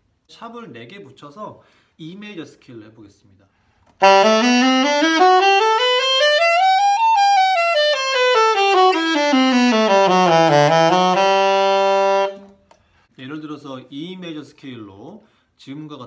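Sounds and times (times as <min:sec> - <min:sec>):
alto saxophone playing a scale: 0:04.0 - 0:12.6.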